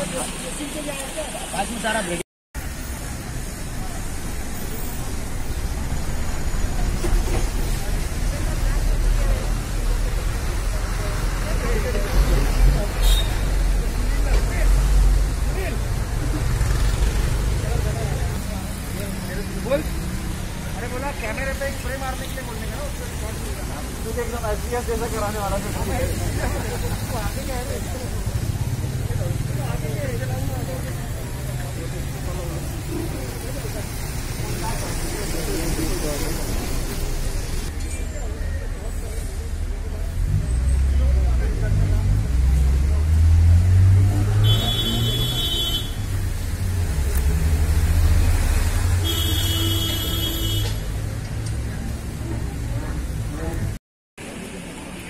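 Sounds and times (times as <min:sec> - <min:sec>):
low rumble of road traffic: 0:00.0 - 0:55.0.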